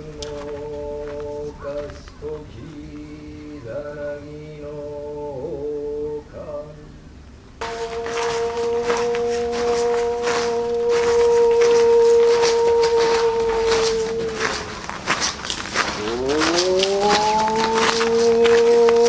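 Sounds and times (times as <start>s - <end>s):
note sliding upward: 7.6s - 15.0s
long horn-like note: 7.6s - 19.0s.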